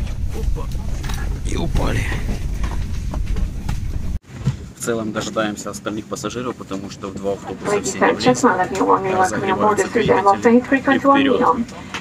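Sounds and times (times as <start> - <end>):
cabin low rumble: 0.0 - 4.2.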